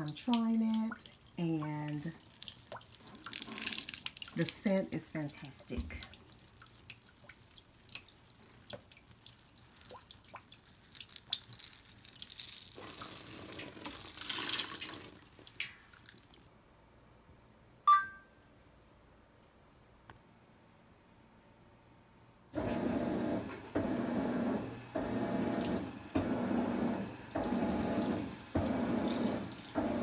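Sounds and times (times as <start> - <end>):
water splashing into washer tub: 0.0 - 16.4, 25.0 - 30.0
beads pouring into water: 2.2 - 4.4, 10.5 - 16.3
short electronic beep: 17.9 - 18.3.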